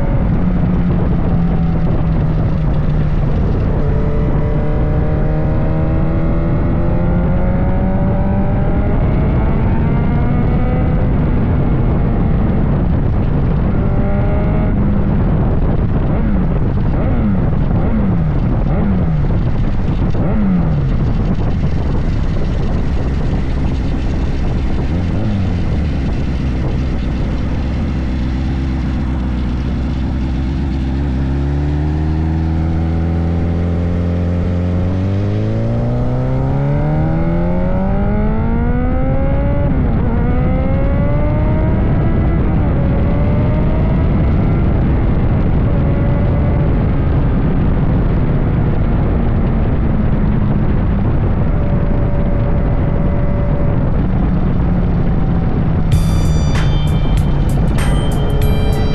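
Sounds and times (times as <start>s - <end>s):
motorcycle engine accelerating: 0.0s - 58.9s
wind rushing: 0.0s - 58.9s.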